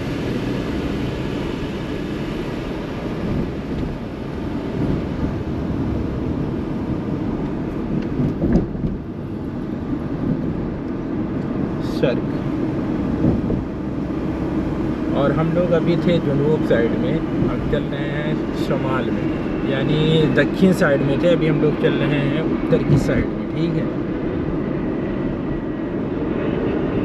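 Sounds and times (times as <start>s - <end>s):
car engine and tyre noise: 0.0s - 27.0s.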